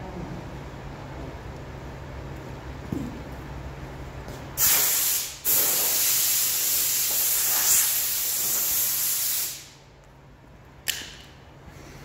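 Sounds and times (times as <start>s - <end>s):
pressurised spray hissing: 4.6s - 9.8s.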